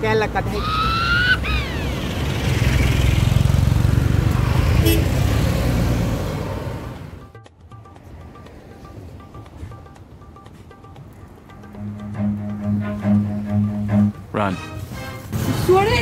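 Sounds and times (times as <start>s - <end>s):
vehicle passing with tyre noise: 0.0s - 16.0s
background music: 7.0s - 16.0s.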